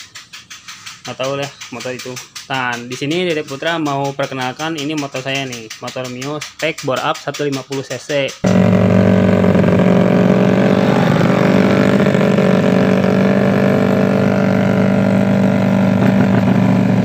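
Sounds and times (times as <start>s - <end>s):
scooter engine at high revs: 8.4s - 17.0s.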